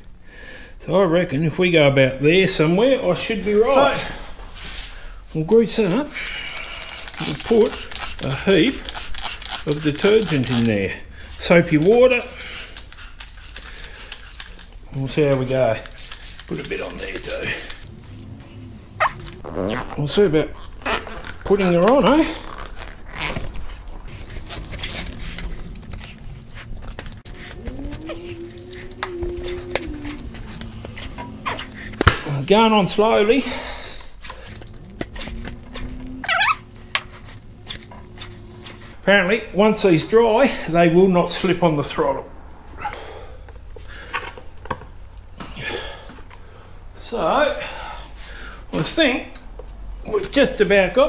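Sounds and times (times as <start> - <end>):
foam rubbing and scuffing: 3.4 - 5.1
spray bottle spritzing and clicking: 6.5 - 10.8, 11.8 - 14.9, 15.8 - 17.9
foam squeaking on grip: 15.4 - 32.8, 34.3 - 39.1.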